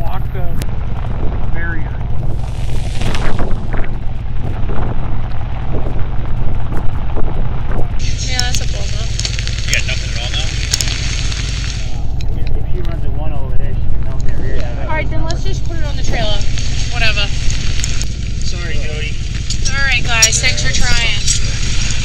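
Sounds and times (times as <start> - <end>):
people talking indistinctly: 0.0 - 6.2, 6.8 - 22.0
wind buffeting microphone: 0.0 - 22.0.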